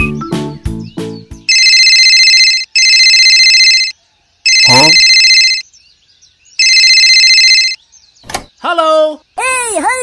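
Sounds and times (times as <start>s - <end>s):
electronic phone ringtone: 1.5s - 5.6s, 6.6s - 7.8s.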